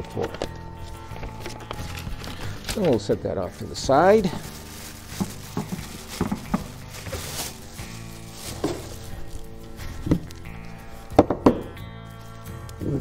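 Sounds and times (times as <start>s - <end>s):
background music: 0.0s - 13.0s
plastic bag crinkling: 0.1s - 11.1s.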